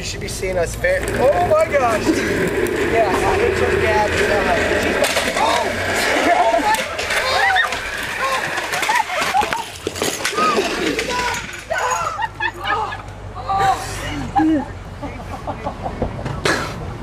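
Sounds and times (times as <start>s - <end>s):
chair casters rattling on pavement: 0.0s - 13.0s
road noise: 0.0s - 17.0s
wind: 0.0s - 17.0s
people shouting excitedly: 5.6s - 9.7s.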